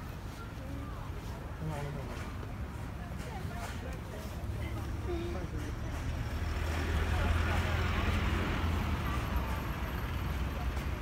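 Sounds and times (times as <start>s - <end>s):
faint voices: 0.0s - 11.0s
vehicle passing with tyre noise: 4.4s - 11.0s.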